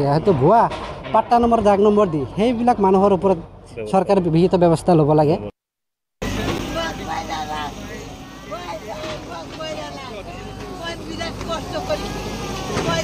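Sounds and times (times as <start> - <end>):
people talking and calling out: 0.0 - 5.5, 6.2 - 13.0
digger engine humming: 6.2 - 13.0.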